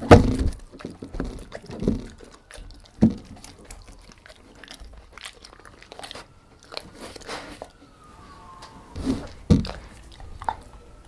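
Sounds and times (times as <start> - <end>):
dog chewing crumbs: 0.0 - 8.0, 9.1 - 11.0.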